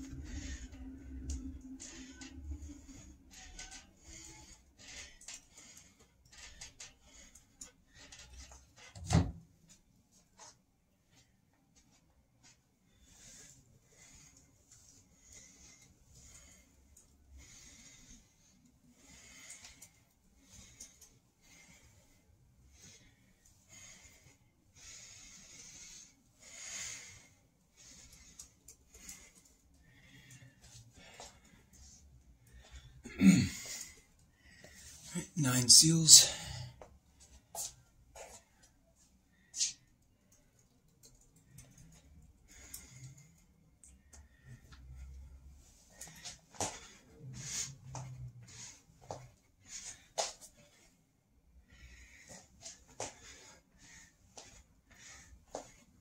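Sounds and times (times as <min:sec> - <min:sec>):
man breathing hard: 0:00.0 - 0:08.6, 0:12.4 - 0:56.0.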